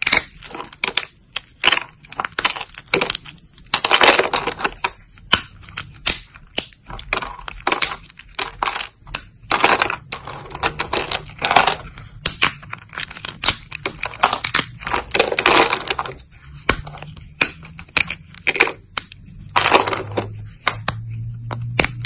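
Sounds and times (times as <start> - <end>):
soap plates snapping and crunching: 0.0 - 21.0, 21.6 - 22.0.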